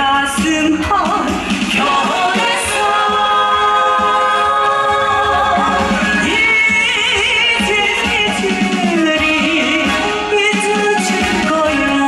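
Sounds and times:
backing band with regular beat: 0.0 - 12.0.

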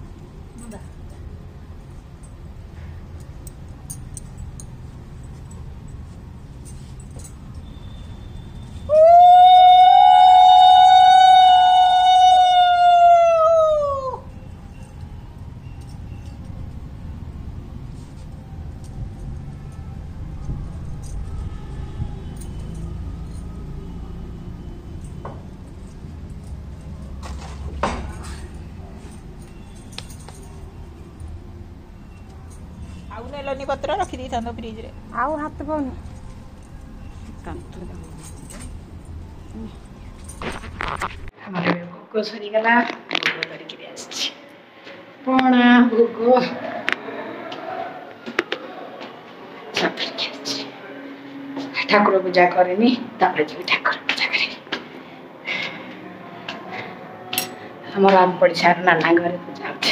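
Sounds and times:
faint clinks: 0.5 - 8.9, 14.3 - 19.0, 24.6 - 34.8, 35.7 - 41.1
steady low rumble: 14.3 - 41.3.

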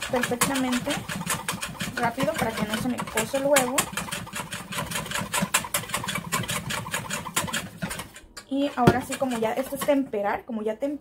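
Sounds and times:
whisk beating against metal bowl: 0.0 - 10.2.

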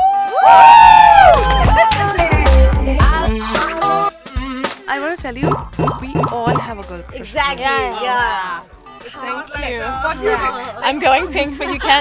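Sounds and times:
women cheering woo: 0.0 - 2.2.

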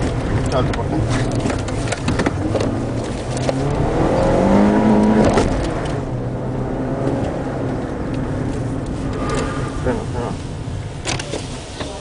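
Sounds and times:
car engine revving: 0.0 - 12.0.

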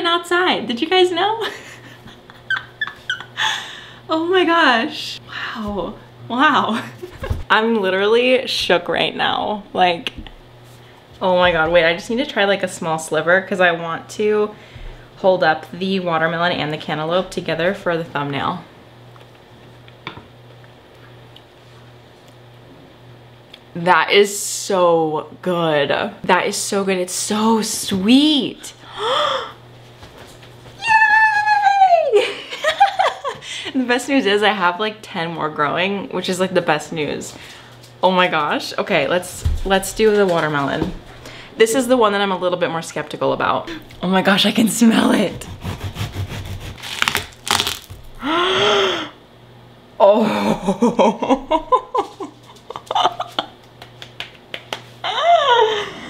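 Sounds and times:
low steady hum: 0.0 - 56.0
woman gasping: 3.4 - 4.1, 28.8 - 29.6, 48.2 - 49.2, 55.0 - 56.0
watermelon cracking and tearing: 46.3 - 48.2
person chewing melon: 46.8 - 48.2.

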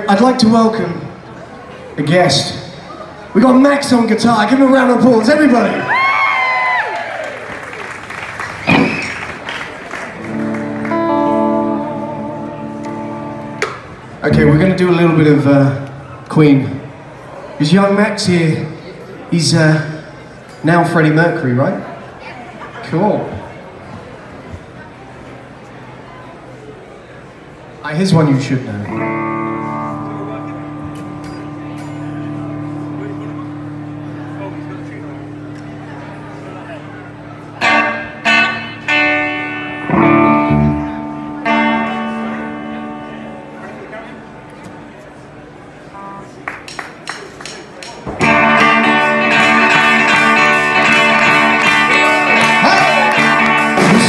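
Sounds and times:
audience applauding: 5.7 - 11.4, 46.4 - 48.0, 50.2 - 54.0
electric guitar playing: 8.0 - 17.2, 28.8 - 47.0, 48.2 - 54.0
sustained guitar chord: 10.2 - 15.4, 28.8 - 44.6, 48.2 - 54.0.

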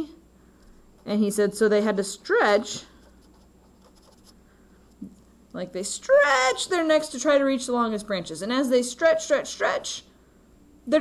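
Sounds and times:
felt-tip pen writing on paper: 3.0 - 4.3.

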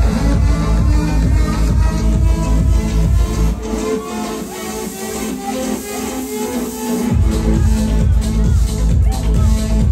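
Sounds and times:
electronic dance music: 0.0 - 9.9.

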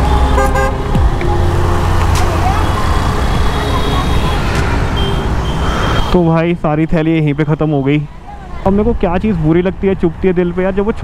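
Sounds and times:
car horns honking: 0.0 - 8.2
rumble of passing vehicles: 0.0 - 11.0
people's voices: 2.0 - 5.3, 5.9 - 11.0.

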